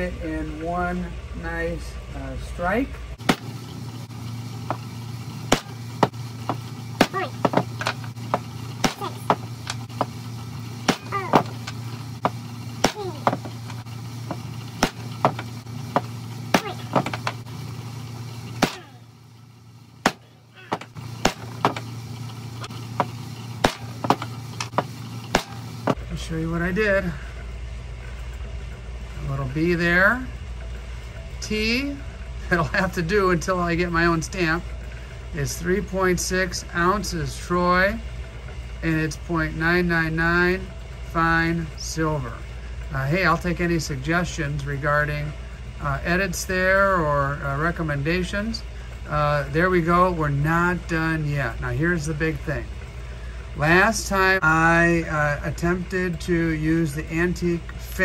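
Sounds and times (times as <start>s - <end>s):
hammer striking steel punches: 3.2s - 3.6s, 5.5s - 10.2s, 10.8s - 17.4s, 18.6s - 19.0s, 20.0s - 21.9s, 23.0s - 26.0s.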